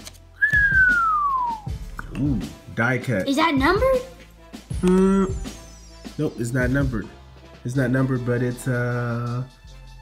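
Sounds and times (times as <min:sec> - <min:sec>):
descending whistle: 0:00.4 - 0:01.8.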